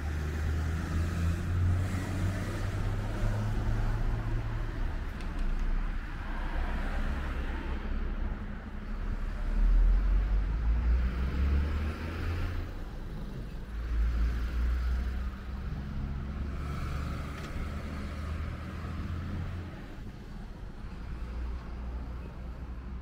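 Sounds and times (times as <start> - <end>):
cars passing: 0.0 - 23.0.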